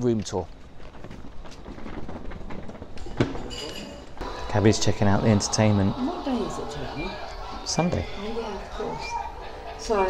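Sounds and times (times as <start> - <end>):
footsteps on tiled floor: 0.0 - 4.2
suitcase wheels rolling on tiles: 0.0 - 4.2.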